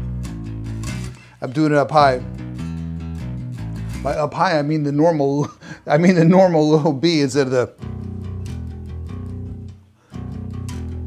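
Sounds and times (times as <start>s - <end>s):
electric bass played with a pick: 0.0s - 5.1s, 7.7s - 11.0s.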